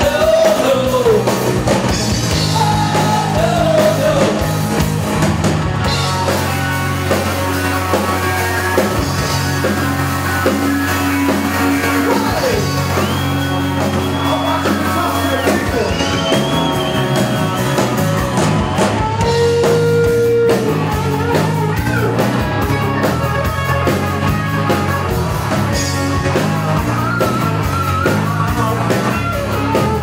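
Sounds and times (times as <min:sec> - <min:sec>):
bent electric guitar notes: 0:00.0 - 0:30.0
rock band playing loud: 0:00.0 - 0:30.0.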